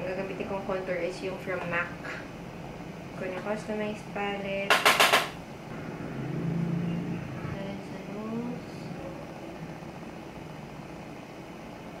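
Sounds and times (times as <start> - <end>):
background hiss and hum: 0.0 - 12.0.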